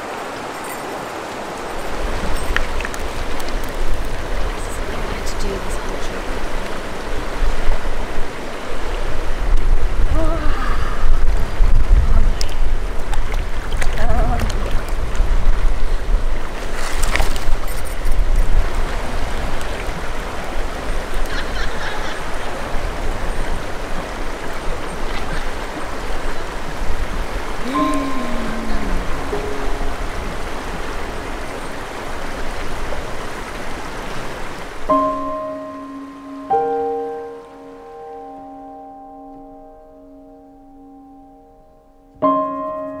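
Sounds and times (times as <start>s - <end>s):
river rushing over stones: 0.0s - 37.9s
gentle piano music: 27.6s - 32.8s, 34.8s - 43.0s.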